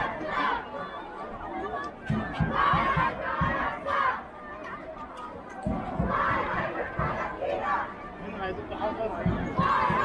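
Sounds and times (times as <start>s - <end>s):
voices shouting: 0.0s - 4.4s, 5.7s - 10.0s
crowd din: 0.0s - 10.0s.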